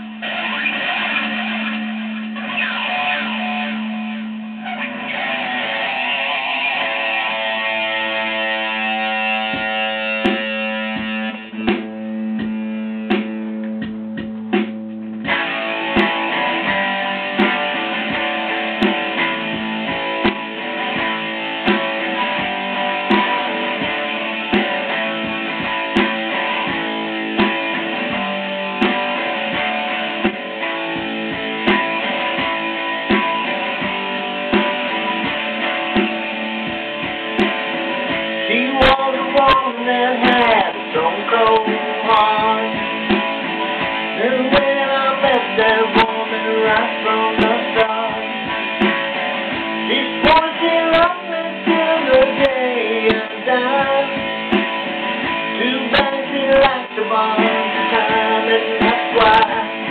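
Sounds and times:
electric guitar playing: 0.0s - 59.9s
steady drum beat: 7.3s - 59.9s.

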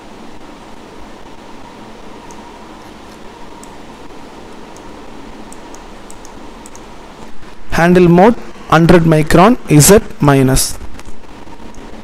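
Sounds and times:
background hiss and hum: 0.0s - 12.0s.

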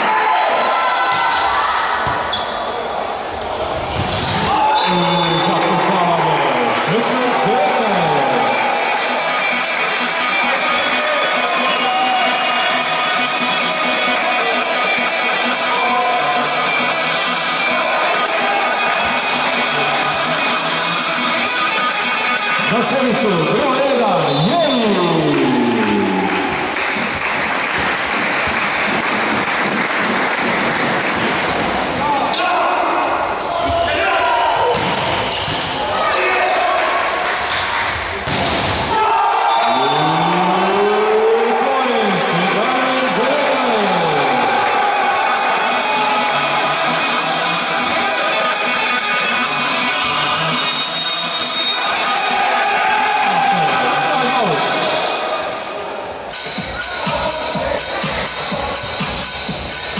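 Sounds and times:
crowd and player shouts: 0.0s - 2.4s, 4.3s - 20.1s, 32.0s - 37.2s, 38.8s - 55.6s
arena music: 4.0s - 32.3s, 37.8s - 59.9s.

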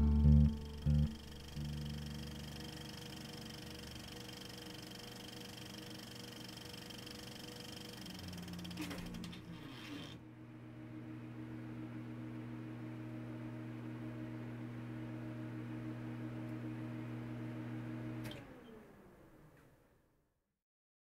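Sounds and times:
high whining tones: 0.0s - 3.2s
electrical hum: 0.0s - 18.2s.

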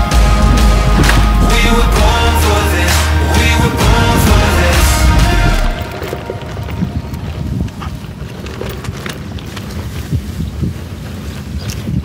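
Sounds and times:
bike knocks and rattles: 0.0s - 2.2s, 3.4s - 12.0s
wind buffeting microphone: 0.0s - 12.0s.

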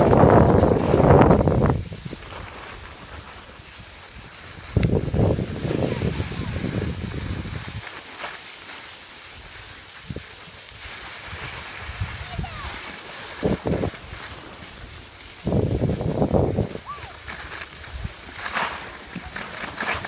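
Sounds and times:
wind buffeting microphone: 0.0s - 7.8s, 10.0s - 20.0s
skis sliding on snow: 0.0s - 20.0s.

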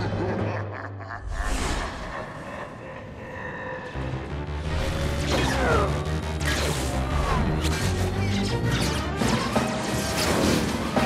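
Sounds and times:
orchestral action film score: 0.0s - 11.0s.

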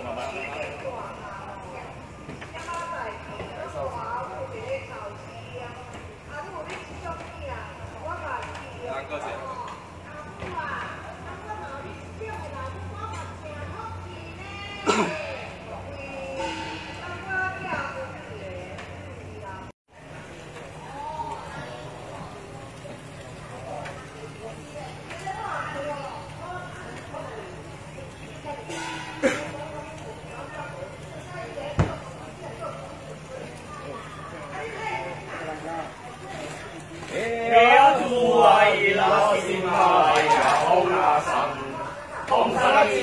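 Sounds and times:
people talking: 0.0s - 43.0s.

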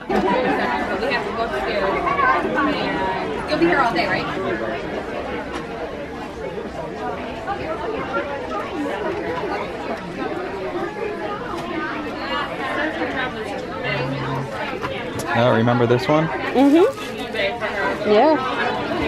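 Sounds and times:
crowd babble: 0.0s - 19.0s.

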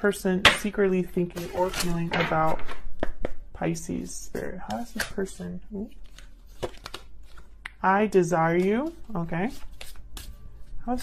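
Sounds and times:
woman speaking: 0.0s - 2.7s, 3.6s - 6.0s, 7.8s - 9.6s
cards clicking and rustling: 6.0s - 7.6s.

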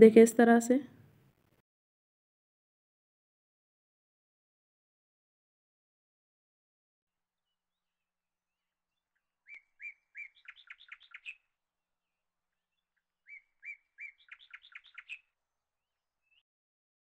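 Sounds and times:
bird singing: 8.9s - 15.4s.

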